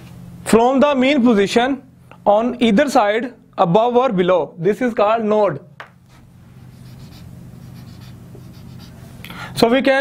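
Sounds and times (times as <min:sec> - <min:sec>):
marker pen writing on whiteboard: 0:06.1 - 0:09.0.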